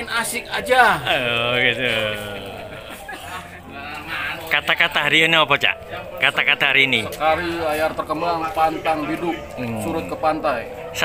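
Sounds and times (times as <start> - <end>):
man's drawn-out voice: 1.0 - 3.1
background voices: 1.0 - 4.6.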